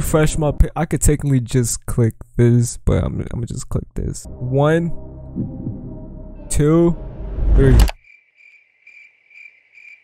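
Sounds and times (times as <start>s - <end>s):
crickets chirping: 8.0s - 10.0s.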